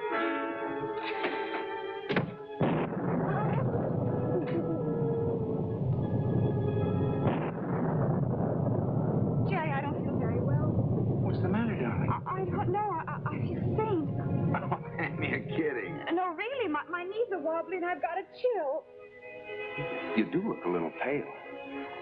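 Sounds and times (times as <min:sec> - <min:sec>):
low rumbling: 0:02.6 - 0:16.0.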